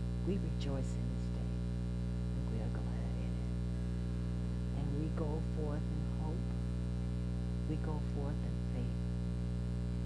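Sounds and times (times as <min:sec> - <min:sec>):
electrical mains hum: 0:00.0 - 0:10.0
person speaking slowly: 0:02.4 - 0:03.5.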